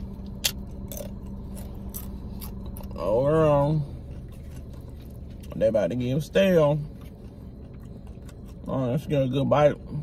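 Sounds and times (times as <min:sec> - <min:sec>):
chip crunching: 0:00.0 - 0:09.5
steady low hum: 0:00.0 - 0:10.0.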